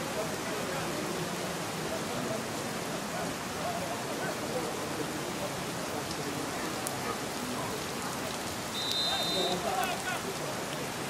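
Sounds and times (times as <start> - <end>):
heavy rain on grass: 0.0 - 11.0
short high whistle: 8.8 - 9.6.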